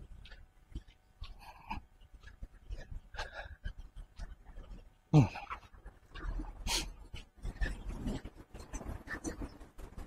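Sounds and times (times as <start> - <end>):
man breathing: 0.1 - 9.6.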